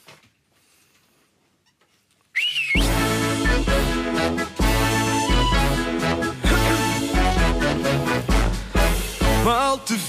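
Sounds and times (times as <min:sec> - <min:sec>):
whistle rising and falling: 0:02.4 - 0:03.1
festive march on keyboard synthesizer: 0:02.8 - 0:09.6.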